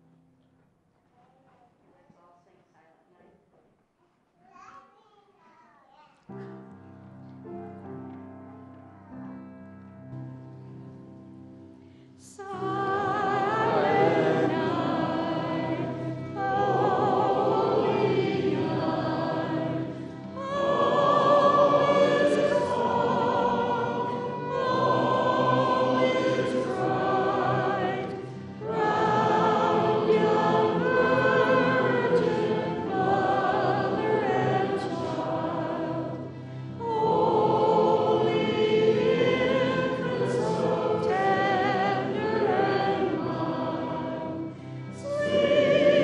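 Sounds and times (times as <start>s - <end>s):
choir singing: 12.2s - 46.0s.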